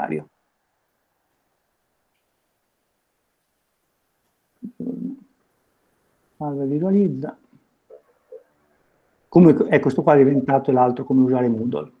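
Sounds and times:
faint click: 2.1 - 2.4
man murmuring: 4.6 - 5.2.

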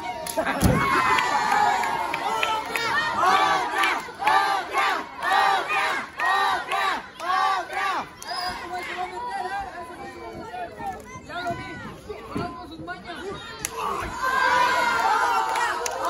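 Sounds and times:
crowd chanting: 1.5 - 10.0.

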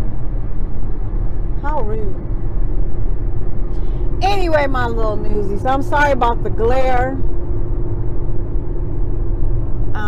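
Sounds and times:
car engine and road rumble: 0.0 - 10.0
faint steady hum: 0.0 - 10.0.

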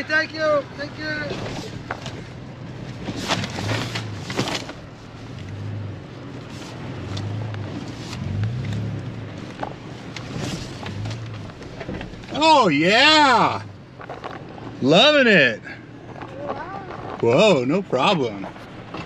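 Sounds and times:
vehicle engine humming: 0.0 - 19.0
vehicle body knocks and rattles: 9.6 - 12.3.

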